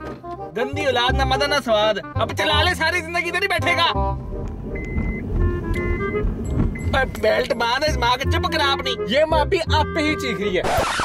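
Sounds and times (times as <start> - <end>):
background music: 0.0 - 11.0
car engine and tyres rumble: 0.0 - 11.0.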